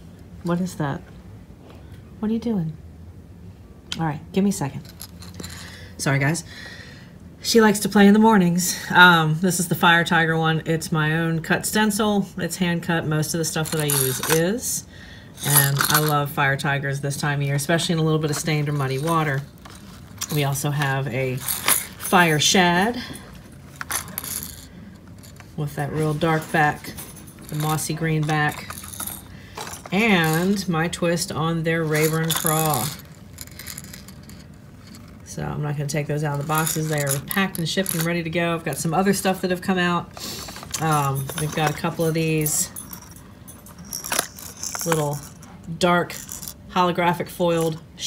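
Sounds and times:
fishing lure rattling: 13.6s - 14.4s, 15.4s - 16.2s, 21.4s - 22.4s, 23.7s - 25.5s, 27.0s - 30.6s, 31.8s - 35.3s, 36.3s - 38.8s, 40.4s - 45.5s, 46.1s - 46.6s
plastic rustling: 18.2s - 35.4s, 36.2s - 39.4s, 40.1s - 46.7s.

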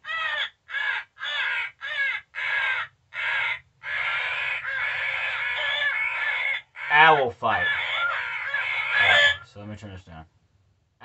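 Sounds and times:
recorded crows cawing through speaker: 0.0s - 9.7s.

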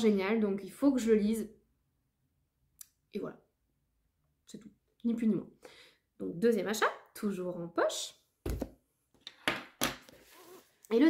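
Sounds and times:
book thumping on table: 8.4s - 8.8s.

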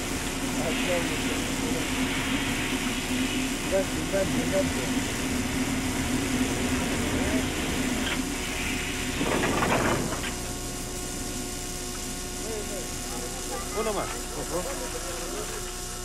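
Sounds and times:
locomotive engine hum: 0.0s - 16.0s.

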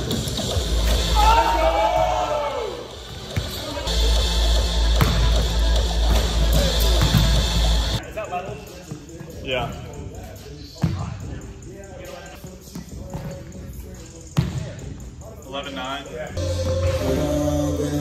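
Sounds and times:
gym room sound: 0.0s - 18.0s
music with heavy bass line: 3.9s - 8.0s.

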